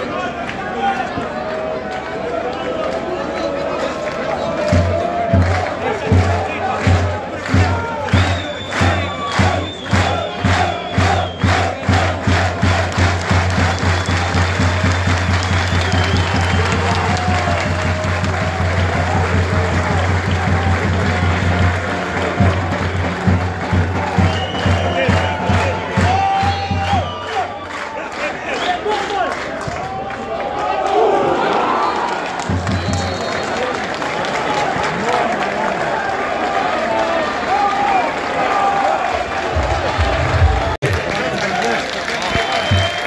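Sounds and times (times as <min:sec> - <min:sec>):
football supporters chanting: 0:03.4 - 0:13.8
rhythmic drum beat: 0:04.6 - 0:27.2, 0:39.4 - 0:41.1.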